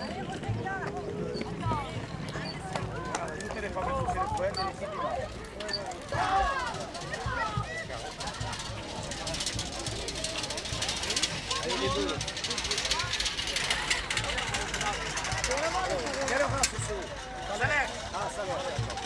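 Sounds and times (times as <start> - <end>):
cart wooden wheels clattering: 0.0 - 19.0
onlookers chatting: 0.0 - 19.0.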